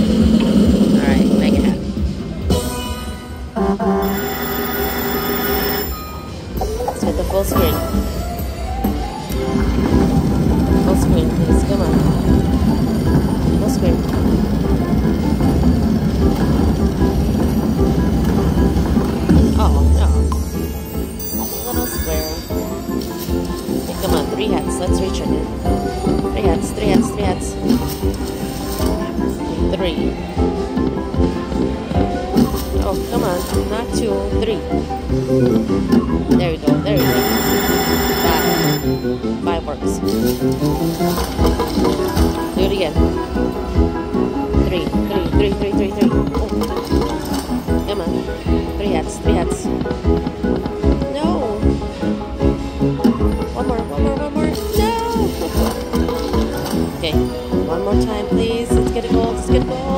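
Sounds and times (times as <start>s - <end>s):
slot machine music: 2.4s - 59.7s
slot machine sound effects: 2.5s - 30.0s, 32.4s - 34.7s, 36.5s - 43.7s, 53.2s - 59.2s.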